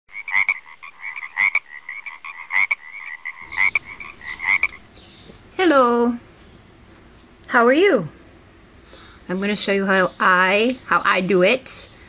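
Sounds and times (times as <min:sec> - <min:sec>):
frog chirping: 0:00.1 - 0:05.3
frog clicking call: 0:00.2 - 0:04.8.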